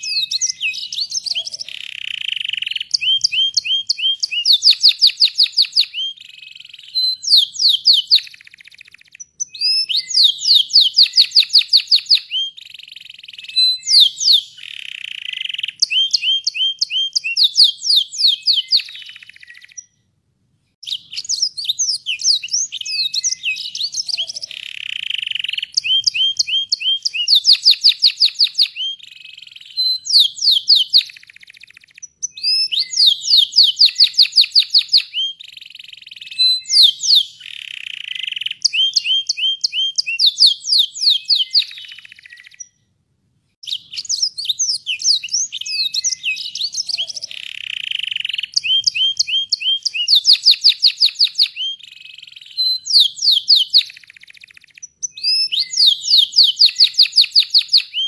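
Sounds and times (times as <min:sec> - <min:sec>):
canary singing trills: 0:00.0 - 0:20.0, 0:20.8 - 0:42.8, 0:43.6 - 0:58.0.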